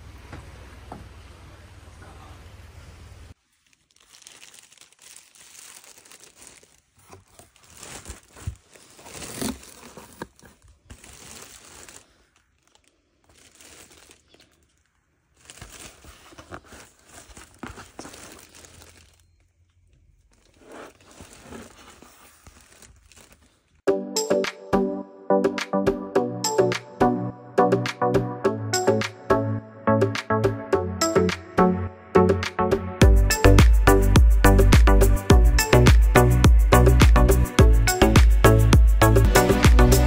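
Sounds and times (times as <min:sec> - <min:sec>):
plastic wrap crinkling and tearing: 0:03.3 - 0:23.8.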